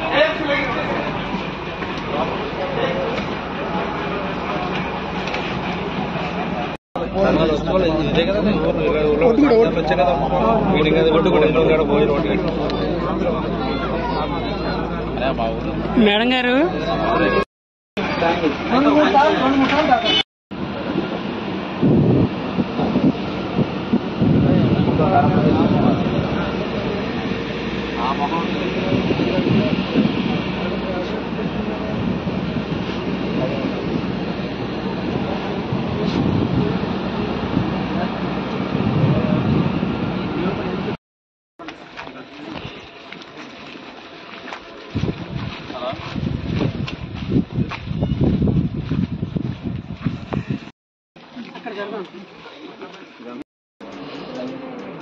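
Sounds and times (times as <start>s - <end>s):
boat engine droning: 0.0s - 17.4s, 18.0s - 41.0s
group of people talking: 0.0s - 41.0s, 51.2s - 55.0s
voices: 0.0s - 41.0s, 41.6s - 46.7s, 51.2s - 55.0s
wind on microphone: 20.6s - 41.0s, 44.9s - 50.7s.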